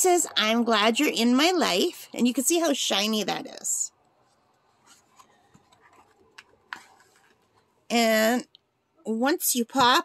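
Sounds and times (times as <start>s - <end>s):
paper page rustling: 4.2s - 7.7s.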